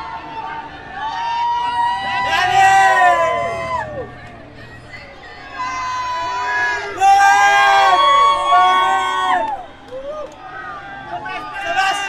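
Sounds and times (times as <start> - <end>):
crowd cheering and shouting: 0.0 - 12.0.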